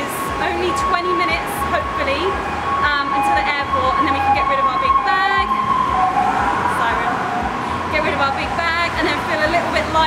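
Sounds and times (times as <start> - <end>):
woman talking: 0.0 - 5.6, 6.6 - 7.2, 7.9 - 10.0
low traffic rumble: 0.0 - 10.0.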